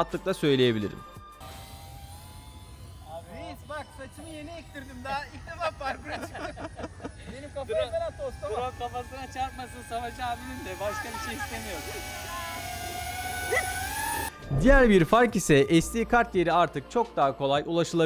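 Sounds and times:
drone propellers whining: 1.4s - 15.4s
people talking: 3.1s - 12.9s, 14.5s - 17.1s.

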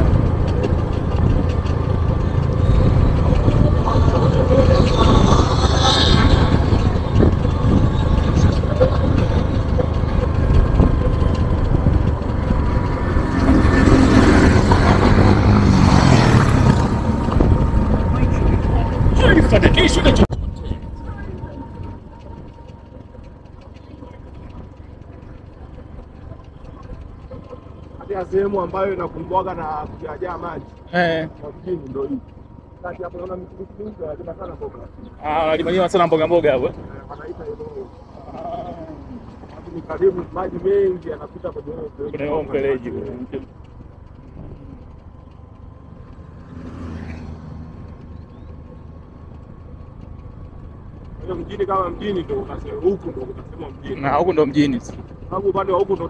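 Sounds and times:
steady low rumble: 0.0s - 46.5s
car driving on paved road: 0.0s - 56.0s
faint scattered clicks: 0.0s - 56.0s.

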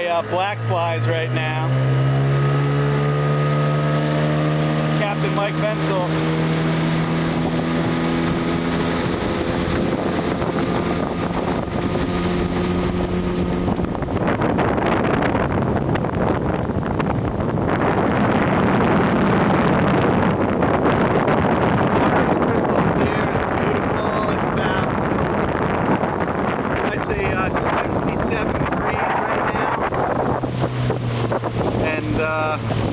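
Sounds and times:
outboard motor running: 0.0s - 32.9s
water rushing: 0.0s - 32.9s
wind on microphone: 0.0s - 32.9s.

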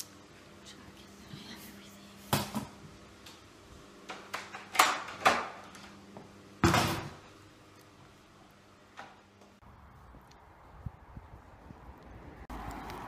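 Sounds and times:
steady low hum: 0.0s - 4.8s
loud clunks and rustles: 6.6s - 7.2s.

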